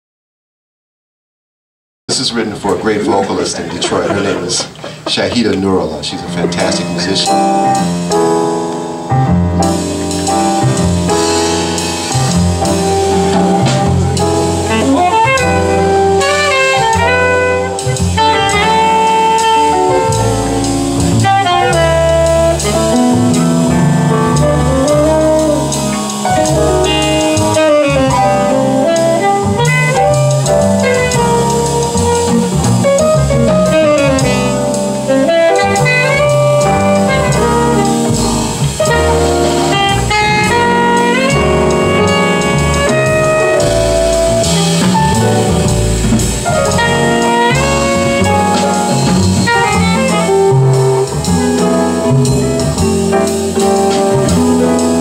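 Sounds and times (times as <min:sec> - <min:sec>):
jazz band playing: 0:02.1 - 0:55.0
tenor saxophone melody: 0:09.6 - 0:55.0.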